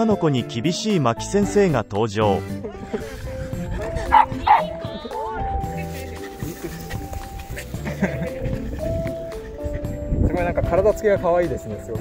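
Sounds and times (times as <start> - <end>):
light cute background music: 0.0 - 12.0
dogs vocalizing in play: 3.3 - 10.2.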